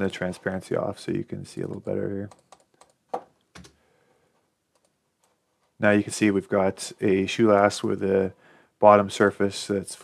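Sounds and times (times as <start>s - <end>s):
man speaking: 0.0s - 2.4s, 5.8s - 10.0s
computer mouse clicks: 4.7s - 5.7s.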